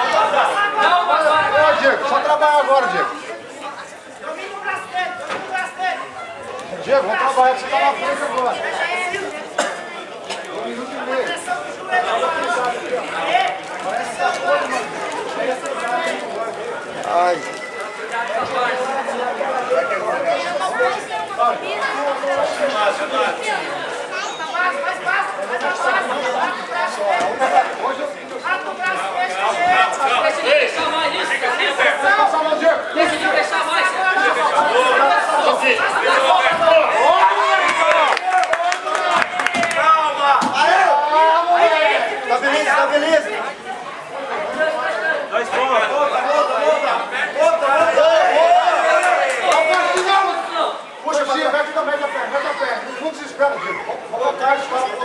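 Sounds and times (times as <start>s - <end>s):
crowd chatter and calling out: 0.0s - 55.0s.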